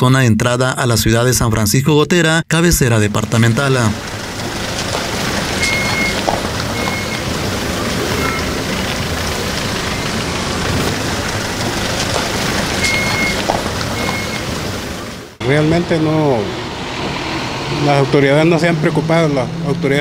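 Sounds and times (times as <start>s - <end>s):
traffic on wet road: 3.1s - 20.0s
short high beeps: 5.6s - 7.2s, 8.1s - 8.6s, 12.8s - 13.4s, 14.0s - 14.4s.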